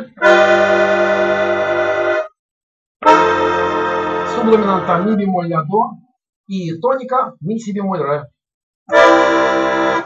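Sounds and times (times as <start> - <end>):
accordion sustained chords: 0.0 - 2.3, 3.0 - 5.4, 8.9 - 10.0.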